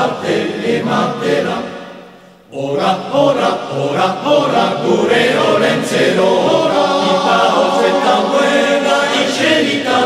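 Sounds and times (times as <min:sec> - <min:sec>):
choir singing a carol: 0:00.0 - 0:10.0.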